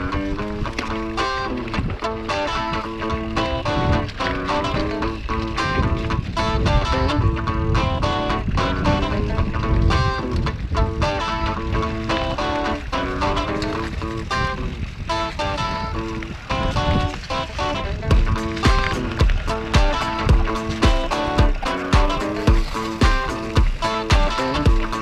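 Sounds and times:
background music with beat: 0:18.1 - 0:25.0.

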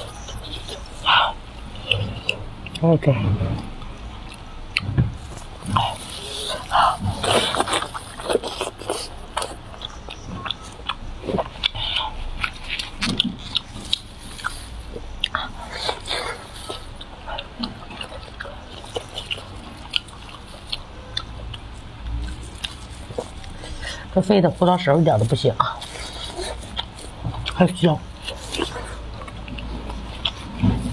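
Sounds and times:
chewing juicy meat: 0:00.0 - 0:30.9.

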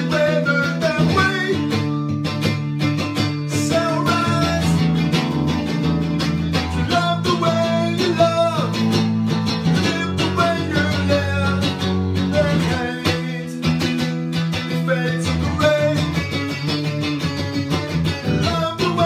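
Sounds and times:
man singing: 0:00.0 - 0:02.2, 0:03.4 - 0:05.2, 0:06.5 - 0:19.0
electric guitar strumming chords: 0:00.0 - 0:19.0.

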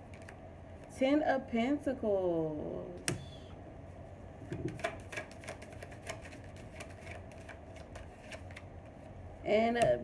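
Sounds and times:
cards being shuffled: 0:04.6 - 0:09.0.

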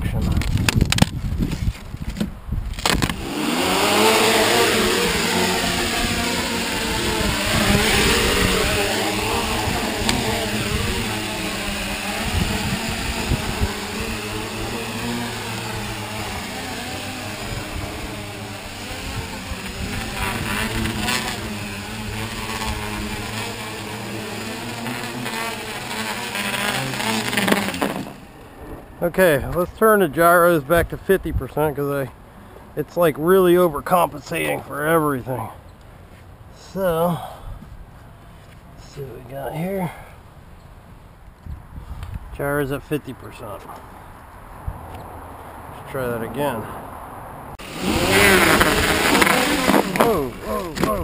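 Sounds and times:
quadcopter motors whirring: 0:00.4 - 0:31.7, 0:47.5 - 0:51.0.

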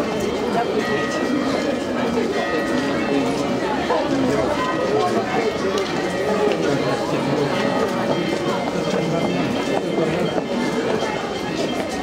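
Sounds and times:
crowd talking: 0:00.0 - 0:12.0
footsteps on cobblestones: 0:00.0 - 0:12.0.

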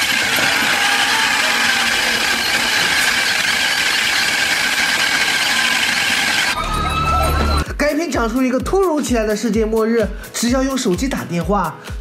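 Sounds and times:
electronic static with high whine: 0:00.0 - 0:06.6.

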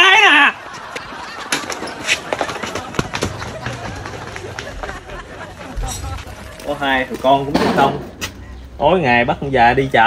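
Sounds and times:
footsteps running on dirt: 0:00.7 - 0:05.2.

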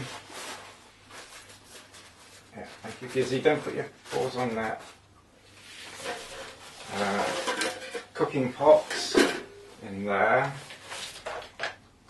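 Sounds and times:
fabric rustling and shuffling: 0:00.0 - 0:11.5.

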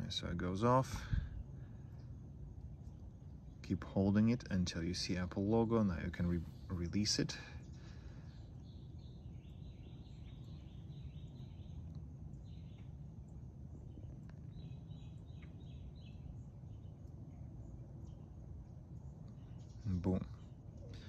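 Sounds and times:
steady low rumble: 0:00.0 - 0:21.0.

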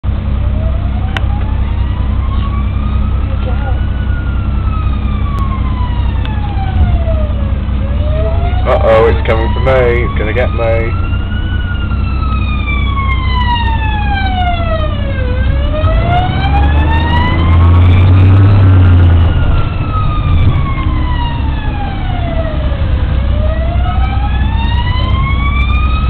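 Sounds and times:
deep rumble: 0:00.0 - 0:26.0
police siren wailing: 0:00.4 - 0:26.0.

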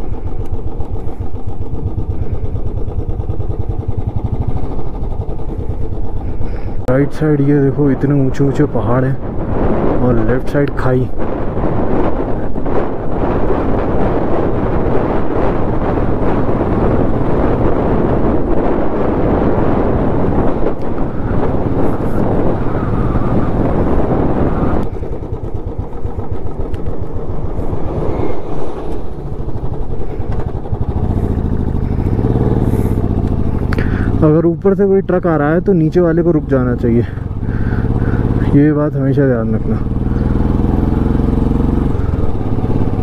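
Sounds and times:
motorcycle engine running: 0:00.0 - 0:43.0
wind rush on microphone: 0:00.0 - 0:43.0.

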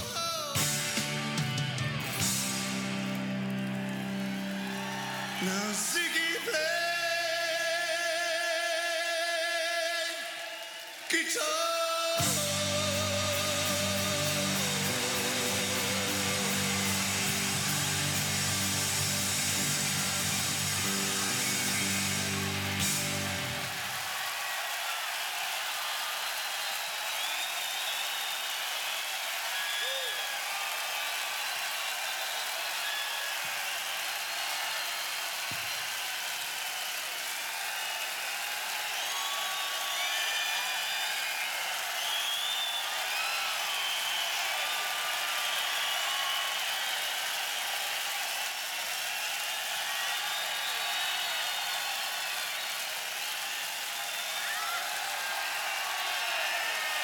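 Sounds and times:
crowd whistles: 0:00.0 - 0:06.9, 0:12.2 - 0:57.0
crowd shouts: 0:00.0 - 0:08.0, 0:10.0 - 0:57.0
crowd cheering: 0:00.0 - 0:57.0.

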